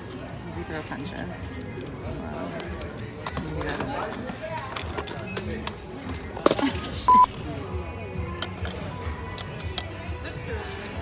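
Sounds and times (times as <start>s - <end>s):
faint background voices: 0.0s - 11.0s
short electronic beep: 7.1s - 7.4s.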